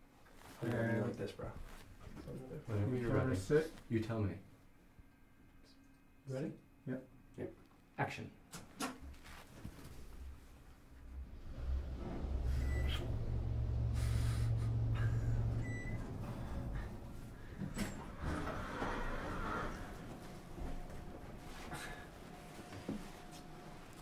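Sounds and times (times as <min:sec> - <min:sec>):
clothing rustling: 0:09.1 - 0:10.7
breathing: 0:13.8 - 0:15.6, 0:16.2 - 0:17.9, 0:21.6 - 0:22.2.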